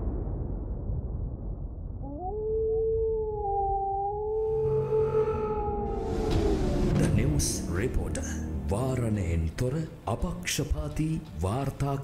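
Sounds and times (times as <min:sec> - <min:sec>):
low rumble: 0:00.0 - 0:11.0
wolf howling: 0:02.0 - 0:07.0.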